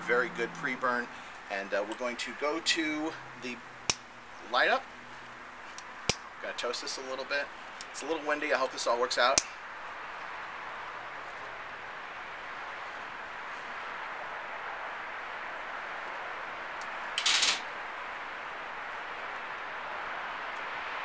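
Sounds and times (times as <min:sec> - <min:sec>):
steady outdoor hiss: 0:00.0 - 0:21.0.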